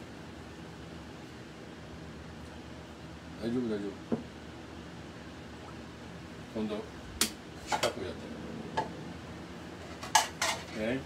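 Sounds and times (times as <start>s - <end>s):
kitchenware clinking: 9.9s - 10.8s.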